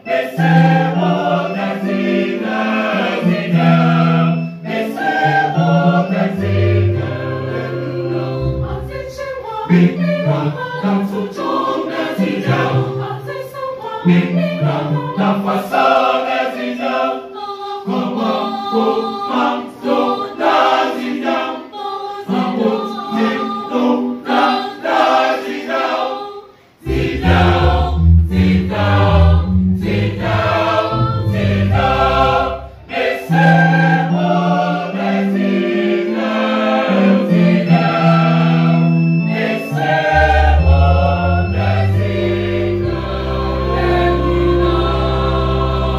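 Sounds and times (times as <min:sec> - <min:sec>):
electronic keyboard: 0:00.0 - 0:13.2, 0:26.8 - 0:45.9
choir singing gospel song: 0:00.0 - 0:45.9
deep bass line: 0:26.9 - 0:32.2.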